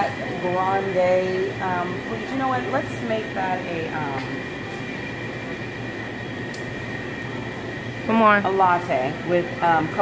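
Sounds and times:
equipment hum: 0.0s - 10.0s.

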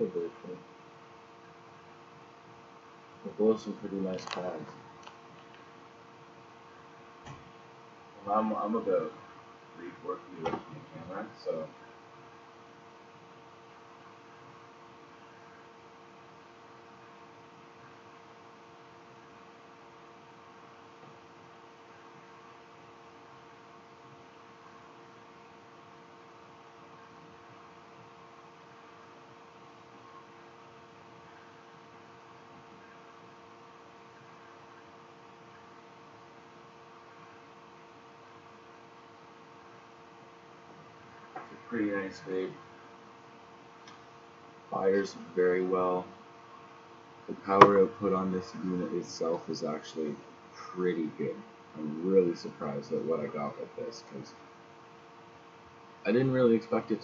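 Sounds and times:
room tone hum and hiss: 0.0s - 57.0s.

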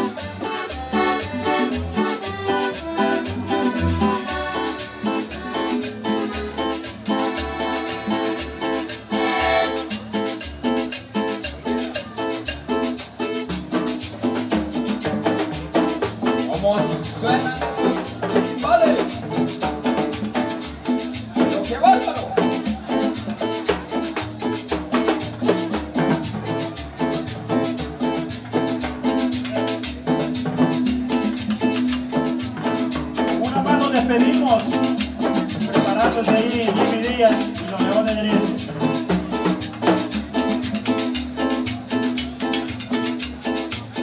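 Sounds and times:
violin: 0.0s - 10.1s
accordion: 0.0s - 44.0s
band playing live: 0.0s - 44.0s
congas: 0.0s - 44.0s
upright bass: 0.0s - 44.0s.

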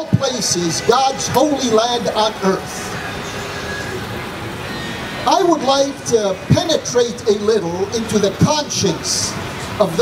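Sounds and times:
street traffic rush: 0.0s - 10.0s.

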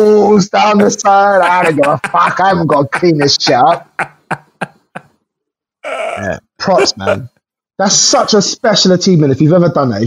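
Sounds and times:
man laughing: 0.6s - 5.1s, 5.9s - 7.3s.

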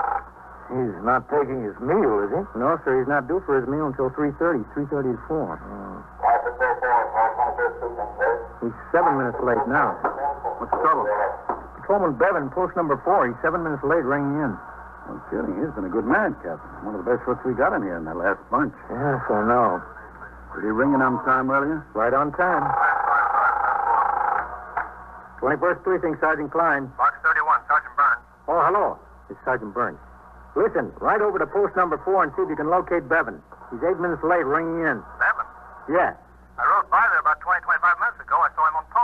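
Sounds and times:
telephone ringing: 0.0s - 0.4s
person speaking on old radio: 0.7s - 24.0s, 25.4s - 30.0s, 30.6s - 39.0s.

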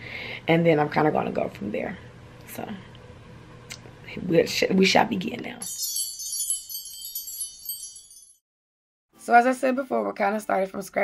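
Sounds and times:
shimmering bell-like chime: 5.6s - 8.4s.

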